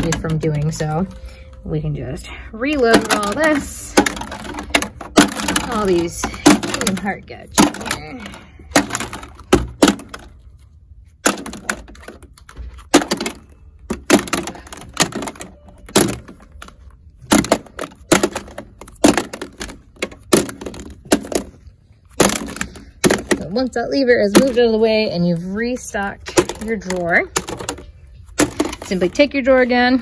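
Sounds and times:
plastic capsules clacking: 2.7 - 10.4, 11.2 - 25.4, 26.1 - 29.4.

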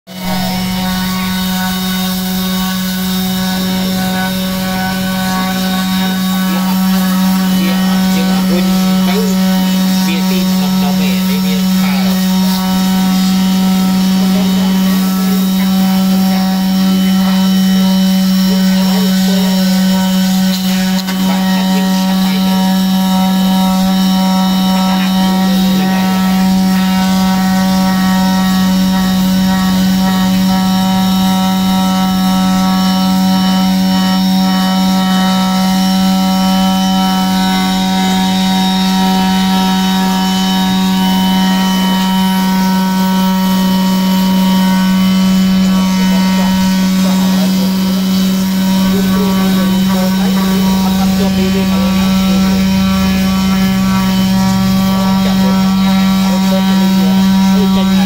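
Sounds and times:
sander buzzing on metal: 0.0 - 58.0.

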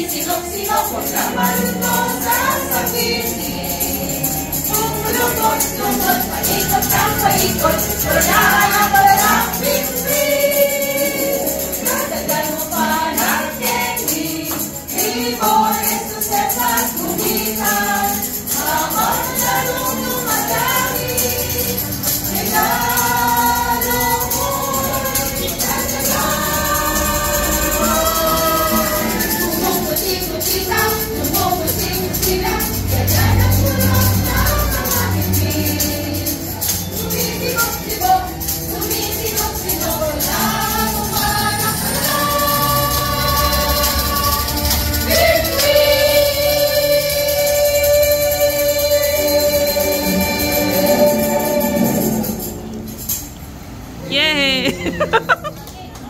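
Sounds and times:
group singing a carol: 0.0 - 54.0
tambourine jingling: 0.0 - 55.5.

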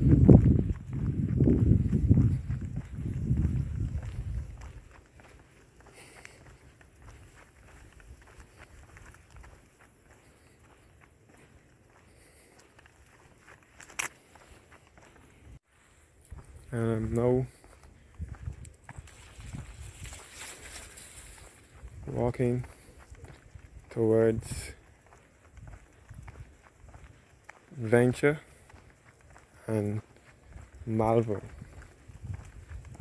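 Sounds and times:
wind buffeting microphone: 0.0 - 5.3, 16.2 - 27.2, 30.4 - 33.0
footsteps on asphalt: 0.0 - 33.0.

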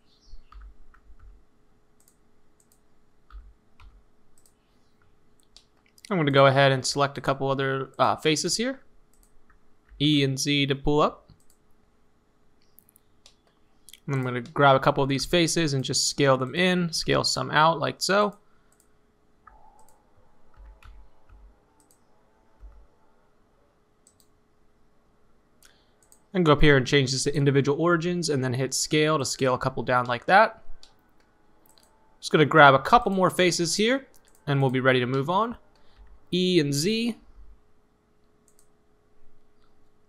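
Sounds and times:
faint hum: 0.0 - 40.0
computer mouse clicks: 0.4 - 1.4, 2.0 - 6.1, 9.1 - 10.0, 11.3 - 11.6, 12.6 - 14.6, 18.7 - 22.9, 24.0 - 24.4, 25.6 - 26.3, 30.8 - 32.0, 34.1 - 34.4, 38.2 - 38.8.

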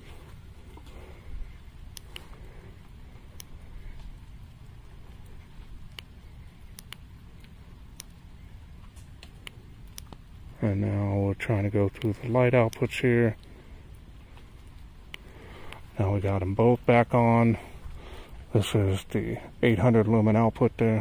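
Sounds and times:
low background rumble: 0.0 - 21.0
rain falling: 0.0 - 21.0
drops ticking: 0.6 - 19.4.

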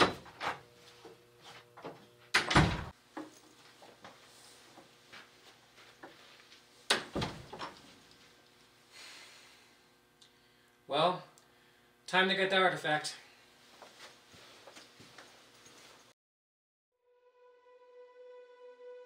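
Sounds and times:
wooden door thumping shut: 2.4 - 2.9, 7.0 - 7.6
faint knocks and footsteps: 3.1 - 6.7, 13.6 - 16.1.

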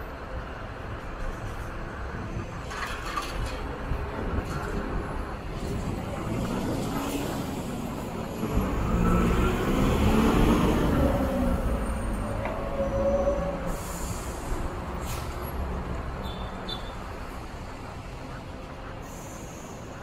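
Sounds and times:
low rumble of buses: 0.0 - 20.0
diesel bus driving past: 5.3 - 20.0.

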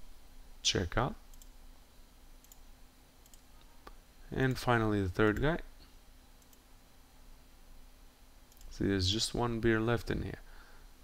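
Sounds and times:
computer mouse clicks: 1.3 - 1.6, 2.4 - 4.0, 6.4 - 6.6, 8.5 - 8.8.

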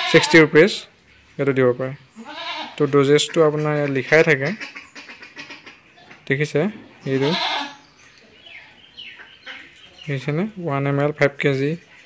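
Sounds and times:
goat bleating: 0.0 - 0.7, 2.1 - 4.7, 6.9 - 7.9.

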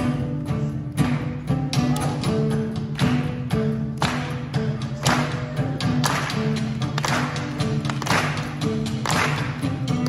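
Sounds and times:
folk-rock band playing: 0.0 - 10.0.

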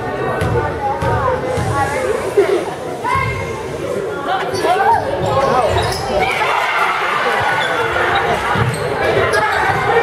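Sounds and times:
spectators' voices: 0.0 - 10.0
sneakers squeaking: 4.5 - 6.6, 7.3 - 10.0.

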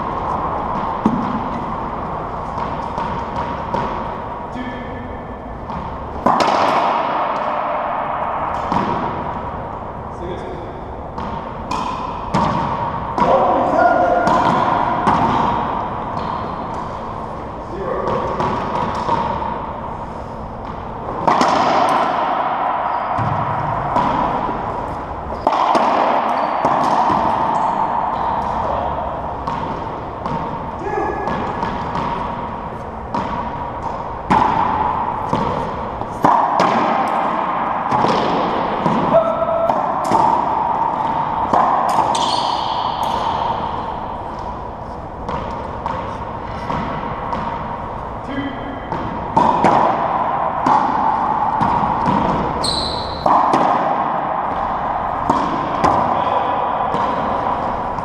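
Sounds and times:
racquetball striking walls and racquets: 0.0 - 58.0.

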